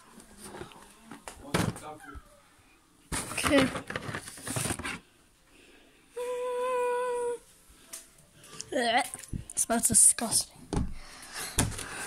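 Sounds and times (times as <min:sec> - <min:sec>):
person humming: 0:06.2 - 0:07.4.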